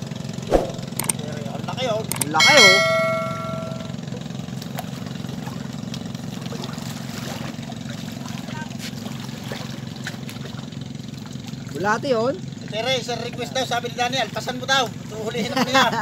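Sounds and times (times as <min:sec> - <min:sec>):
bright electronic chime: 0:02.1 - 0:03.9.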